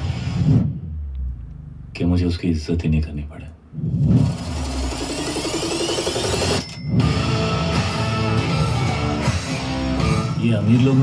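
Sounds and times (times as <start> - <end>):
deep low rumble: 0.1 - 2.2
man speaking: 1.9 - 3.6.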